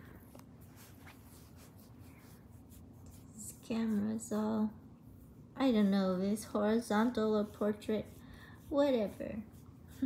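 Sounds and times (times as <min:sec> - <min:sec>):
low room hum: 0:00.0 - 0:10.0
scratchy rustling near microphone: 0:00.0 - 0:10.0.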